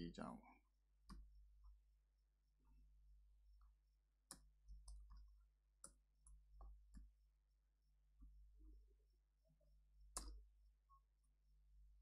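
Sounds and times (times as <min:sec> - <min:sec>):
keyboard and mouse clicks: 0:10.2 - 0:10.4.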